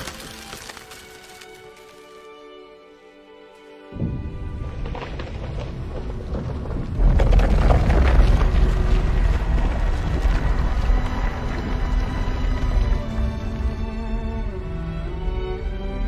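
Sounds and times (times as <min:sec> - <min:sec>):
film score music: 0:00.0 - 0:16.0
deep rumbling sound effect: 0:04.0 - 0:14.6.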